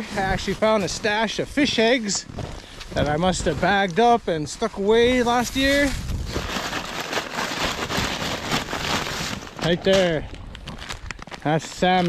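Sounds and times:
plastic bag crinkling: 0:04.8 - 0:12.0.

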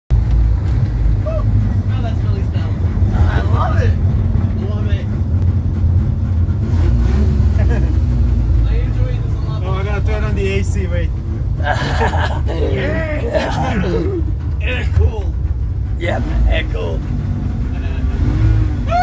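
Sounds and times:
van engine rumbling from cab: 0:00.1 - 0:19.0.

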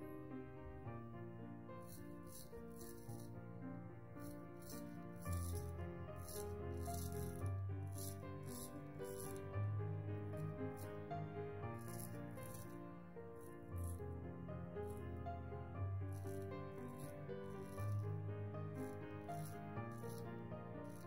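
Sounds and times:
razor scraping stubble: 0:01.9 - 0:03.3, 0:04.2 - 0:09.5, 0:11.8 - 0:12.8, 0:16.1 - 0:18.1, 0:18.8 - 0:21.0.

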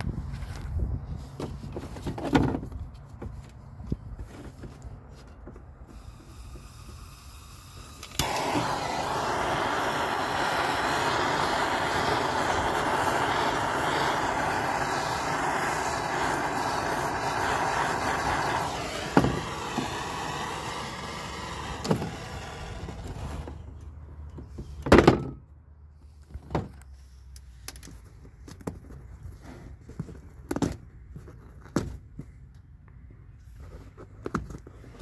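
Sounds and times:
torch clicks: 0:05.9 - 0:23.6
gas torch hissing: 0:05.9 - 0:23.7.

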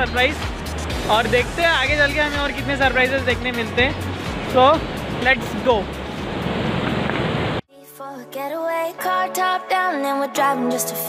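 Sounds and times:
wind on microphone: 0:04.0 - 0:07.6.

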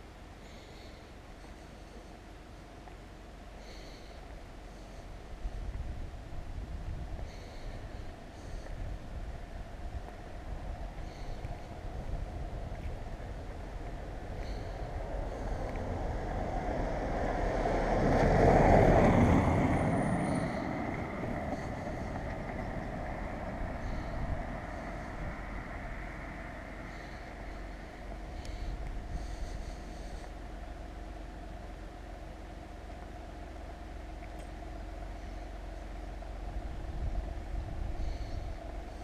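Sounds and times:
steady low rumble: 0:00.0 - 0:39.0
vehicle passing: 0:12.5 - 0:31.6.

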